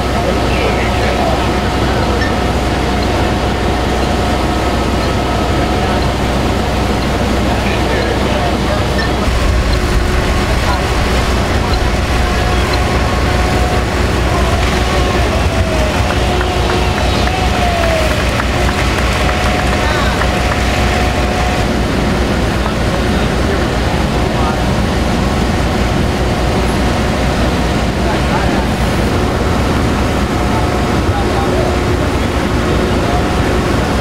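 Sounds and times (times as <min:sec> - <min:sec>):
fire engines idling: 0:00.0 - 0:34.0
indistinct voices: 0:00.0 - 0:34.0.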